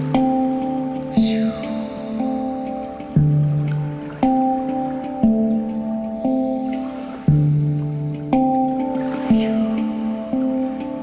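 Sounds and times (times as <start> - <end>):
handpan notes ringing: 0.0 - 11.0.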